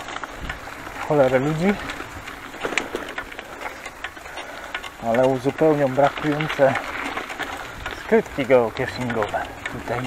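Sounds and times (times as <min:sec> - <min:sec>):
bicycle tyres on dirt path: 0:00.0 - 0:10.0
bike clicks and rattles: 0:00.0 - 0:10.0.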